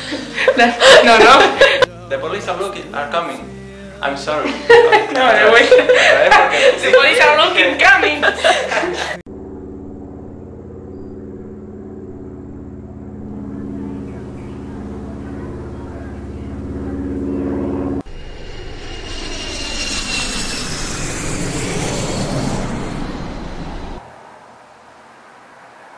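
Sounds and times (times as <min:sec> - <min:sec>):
airplane engine drone: 0:08.3 - 0:25.9
jet rush with high whistle: 0:17.6 - 0:24.0.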